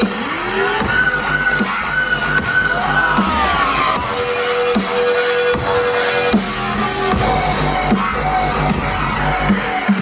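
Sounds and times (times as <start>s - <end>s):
dubstep drum beat: 0.0s - 10.0s.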